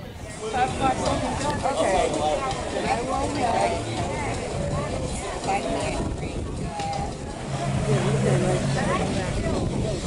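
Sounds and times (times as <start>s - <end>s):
people talking: 0.0s - 10.0s
motorboat engine hum: 7.0s - 10.0s.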